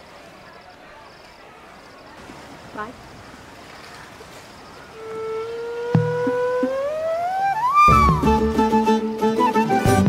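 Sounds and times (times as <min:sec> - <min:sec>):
rising pitched tone: 0:05.2 - 0:08.6.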